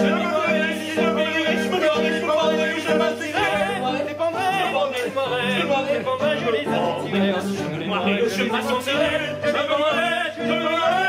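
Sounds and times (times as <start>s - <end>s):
operetta singing with vibrato: 0.0s - 11.0s
piano chords: 0.0s - 11.0s.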